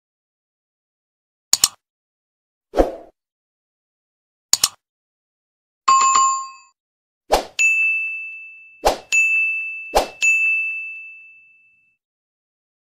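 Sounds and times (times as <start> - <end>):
bell-like ding: 7.6 - 12.0
bright ringing chime: 7.6 - 12.0.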